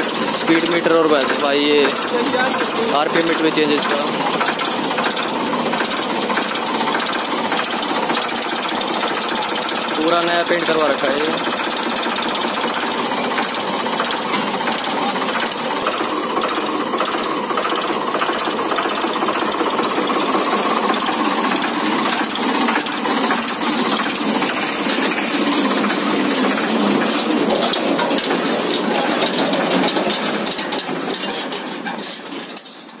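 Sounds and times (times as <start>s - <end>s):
tractor diesel engine idling: 0.0s - 32.6s.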